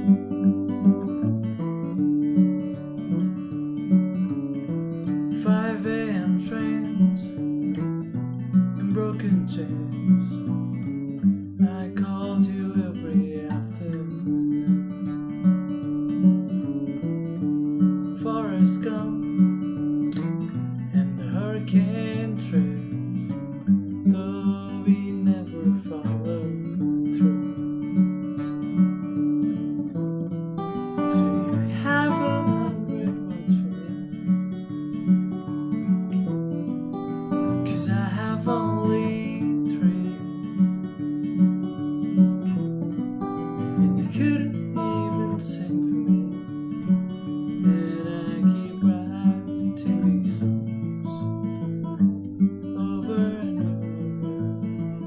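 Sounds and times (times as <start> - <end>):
fingerpicked acoustic guitar: 0.0 - 55.0.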